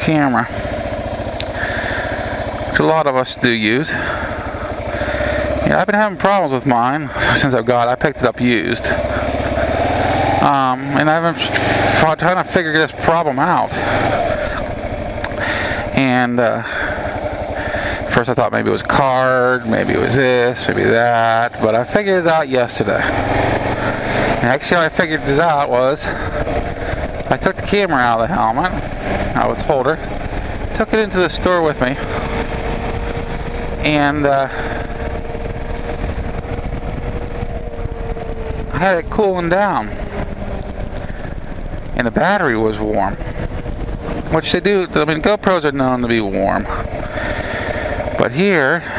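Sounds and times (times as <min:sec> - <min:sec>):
motorcycle engine running: 0:00.0 - 0:48.9
road and wind noise: 0:00.0 - 0:48.9.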